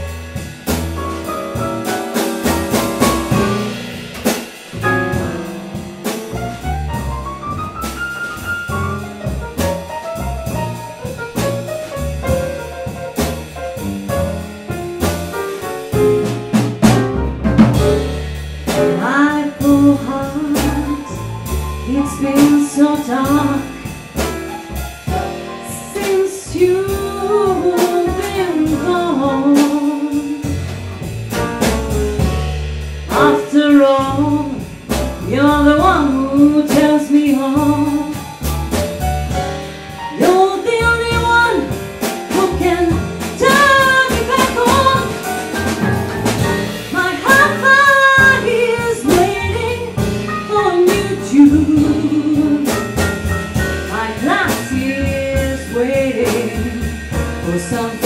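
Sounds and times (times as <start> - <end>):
double bass: 0.0 - 58.0
drum kit: 0.0 - 58.0
grand piano: 0.0 - 58.0
woman singing wordless line: 21.9 - 23.7, 25.7 - 30.3, 33.1 - 34.6, 35.3 - 38.1, 40.2 - 41.8, 42.4 - 45.0, 47.0 - 49.8, 50.5 - 52.6, 53.9 - 56.8, 57.5 - 58.0.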